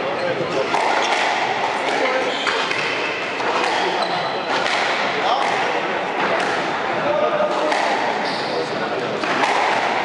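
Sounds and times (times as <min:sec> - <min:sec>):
background chatter: 0:00.0 - 0:10.0
shoes squeaking on floor: 0:01.9 - 0:04.7, 0:08.2 - 0:08.8.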